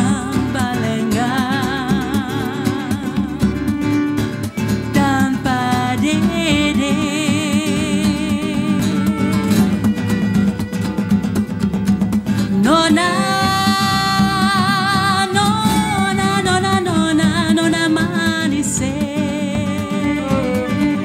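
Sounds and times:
woman singing with vibrato: 0:00.0 - 0:04.0, 0:04.8 - 0:10.0, 0:12.5 - 0:21.0
hand drum: 0:00.0 - 0:21.0
strummed acoustic guitar: 0:00.0 - 0:21.0
violin: 0:00.0 - 0:21.0.

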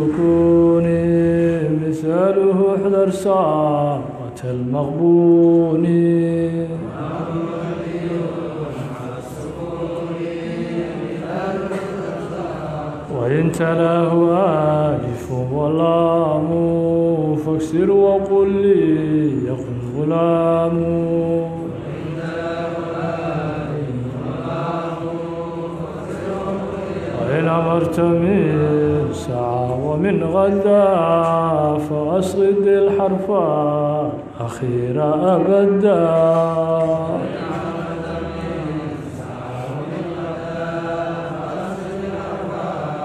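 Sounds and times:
man chanting verse: 0:00.0 - 0:43.0.

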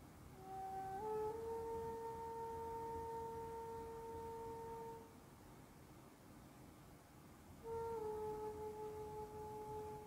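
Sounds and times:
soft held note meditation music: 0:00.0 - 0:10.0.

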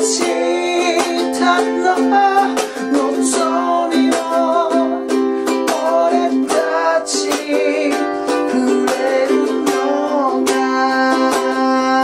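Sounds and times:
man singing: 0:00.0 - 0:12.0
ukulele strumming: 0:00.0 - 0:12.0.

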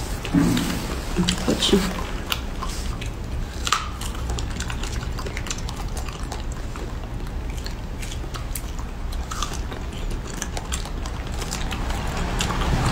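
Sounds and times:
chewing strawberries: 0:00.0 - 0:12.9
steady low hum: 0:00.0 - 0:12.9.

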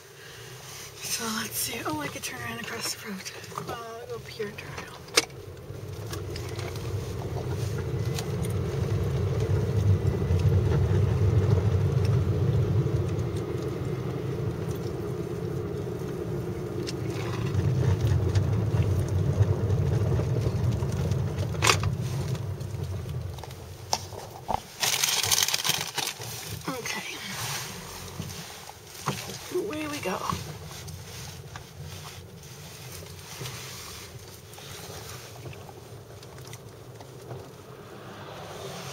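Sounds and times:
car engine and road rumble: 0:00.0 - 0:38.9.

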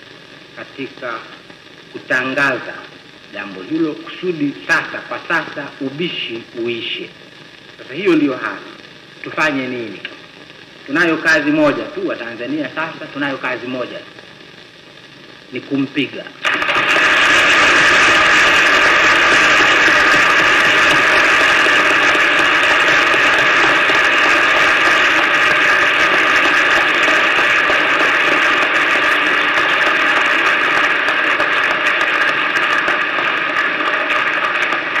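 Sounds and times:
speaker talking: 0:00.6 - 0:07.2, 0:07.8 - 0:10.2, 0:10.9 - 0:14.1, 0:15.5 - 0:16.9
large crowd applauding: 0:16.4 - 0:35.0.

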